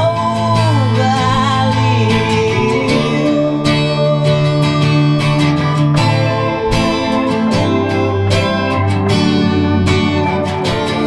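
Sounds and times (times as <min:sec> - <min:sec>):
guitar: 0:00.0 - 0:11.0
sustained keyboard notes: 0:01.8 - 0:11.0.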